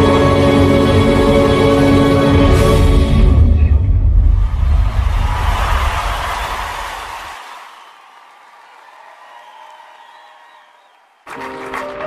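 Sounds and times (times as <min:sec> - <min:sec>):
low rumble: 0:02.5 - 0:07.1
audience applauding and cheering: 0:04.3 - 0:12.0.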